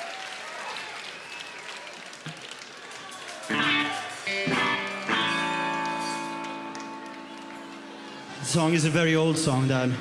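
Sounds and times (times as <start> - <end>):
electric guitar chord ringing: 3.5 - 8.0.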